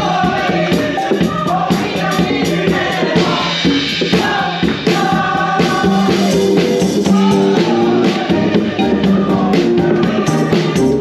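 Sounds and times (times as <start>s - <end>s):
drum kit: 0.0s - 11.0s
gospel group singing: 0.0s - 11.0s
keyboard: 0.0s - 11.0s.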